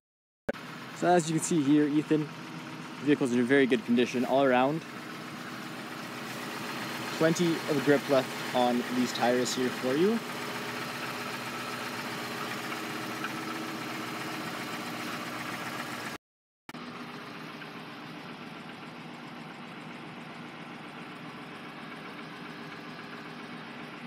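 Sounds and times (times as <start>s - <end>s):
car engine idling: 0.6s - 16.2s, 16.8s - 24.0s.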